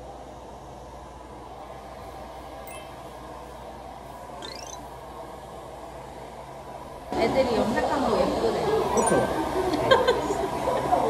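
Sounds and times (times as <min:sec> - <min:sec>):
faint rising tone: 0:04.4 - 0:04.8
faint short high tone: 0:04.4 - 0:04.8.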